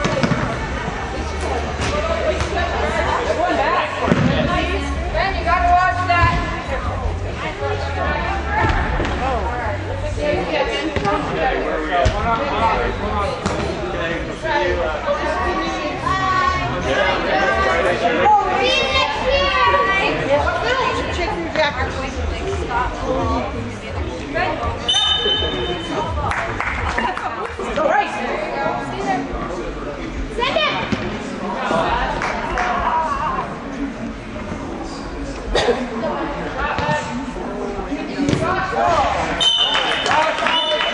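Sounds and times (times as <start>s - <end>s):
voices talking and calling out: 0.0s - 40.9s.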